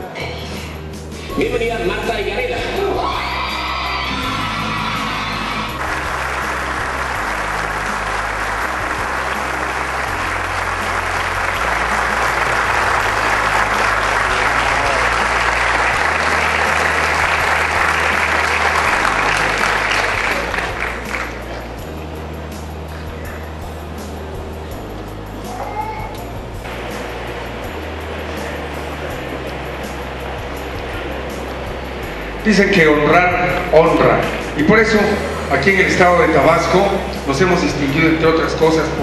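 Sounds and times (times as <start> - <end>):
background music with bass line: 0.0 - 39.0
audience applauding: 3.3 - 21.9.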